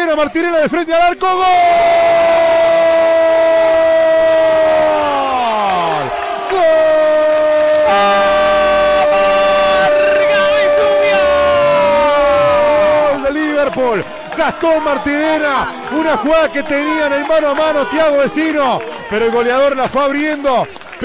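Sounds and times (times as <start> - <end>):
commentator's drawn-out goal cry: 0.1 - 20.4.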